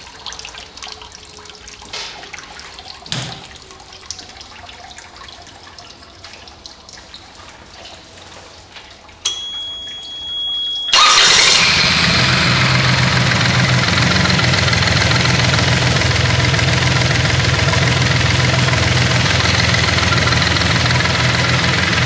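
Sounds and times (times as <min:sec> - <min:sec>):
high warning tone: 0:09.2 - 0:13.1
diesel outboard motor idling: 0:10.3 - 0:22.0.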